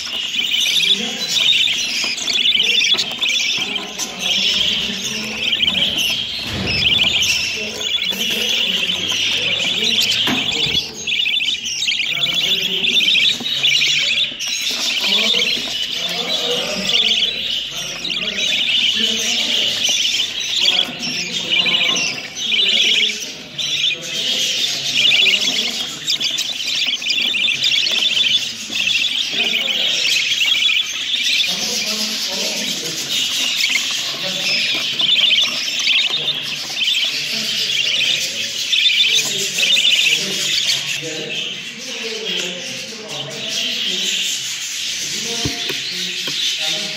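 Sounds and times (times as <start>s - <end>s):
young budgerigars chirping: 0.0s - 46.9s.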